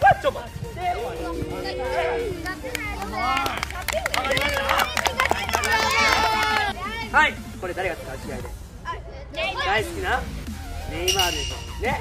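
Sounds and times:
sharp claps: 0:02.4 - 0:06.7.

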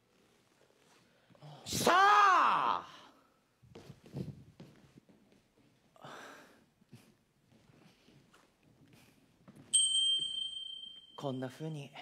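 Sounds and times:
footsteps on stage floor: 0:03.7 - 0:06.0, 0:07.0 - 0:10.4.

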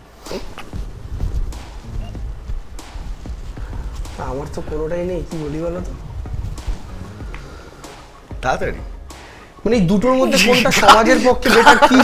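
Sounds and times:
low room rumble: 0:00.0 - 0:09.1.

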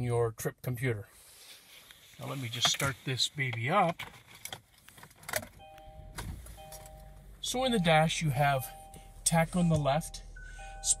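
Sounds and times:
car engine starting and idling: 0:02.6 - 0:11.0
two-note warning chime: 0:05.6 - 0:11.0.

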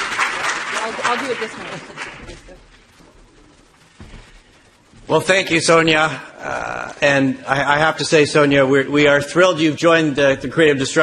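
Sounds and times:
audience applause: 0:00.0 - 0:02.7.

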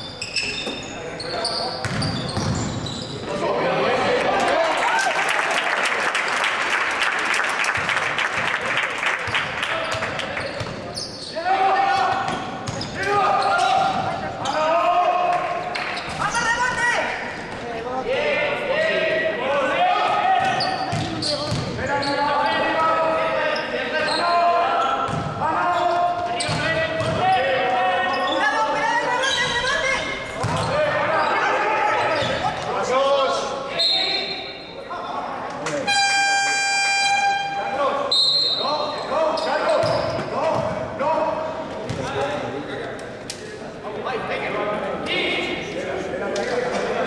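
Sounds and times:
ball bouncing on court: 0:01.8 - 0:02.8, 0:12.0 - 0:14.2, 0:20.4 - 0:21.8, 0:25.0 - 0:25.4, 0:26.4 - 0:27.3, 0:30.4 - 0:30.9
players and spectators shouting: 0:11.3 - 0:17.3, 0:18.0 - 0:20.9, 0:21.8 - 0:34.3
short whistle blasts: 0:35.9 - 0:37.5.

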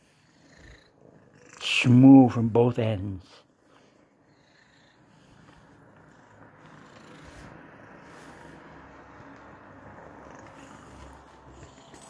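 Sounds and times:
cat purring: 0:00.0 - 0:02.4, 0:03.3 - 0:12.0
hand stroking fur: 0:07.2 - 0:08.6.

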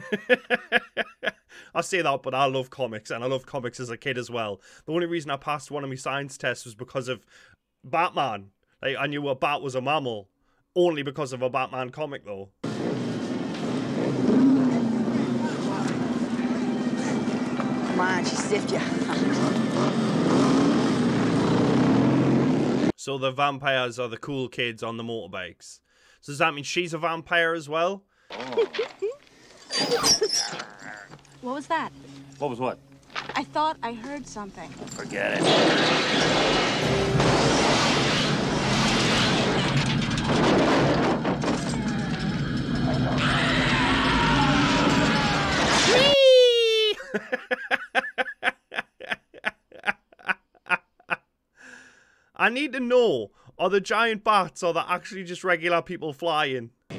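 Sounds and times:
man laughing in short bursts: 0:00.0 - 0:01.6, 0:46.8 - 0:51.2
motorcycle engines running: 0:12.7 - 0:22.9.

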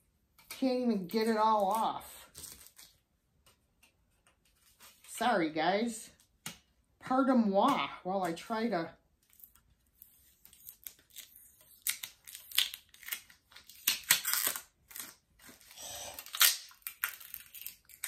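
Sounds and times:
packing tape ripping off: 0:10.4 - 0:18.0.

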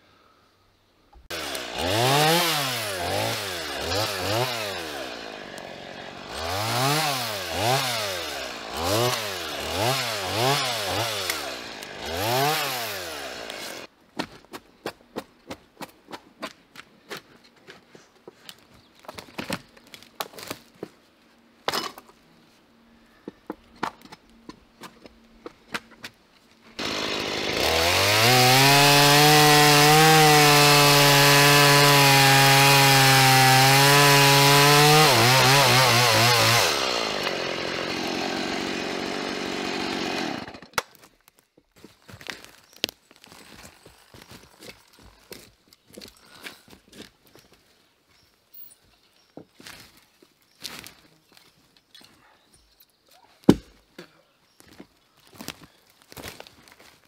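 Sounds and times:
chainsaw revving: 0:01.3 - 0:13.9, 0:26.8 - 0:40.7.

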